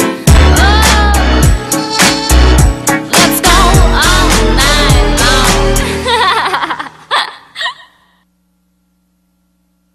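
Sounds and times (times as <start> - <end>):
woman laughing: 5.9 - 8.2.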